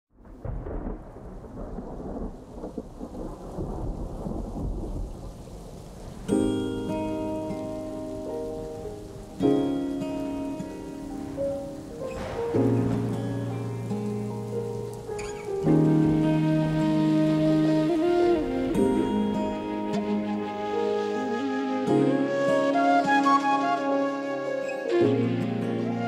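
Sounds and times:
rain hissing: 0.2 - 26.0
rolling thunder: 0.2 - 26.0
sustained musical chords: 6.3 - 26.0.

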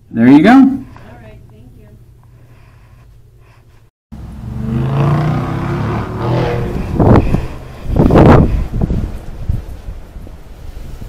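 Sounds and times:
loud outdoor rumble: 4.1 - 10.6.

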